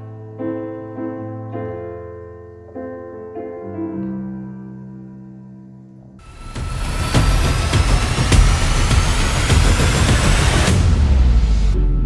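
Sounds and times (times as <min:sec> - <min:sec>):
rising whoosh hiss: 0:06.2 - 0:11.9
sharp hits: 0:06.2 - 0:12.0.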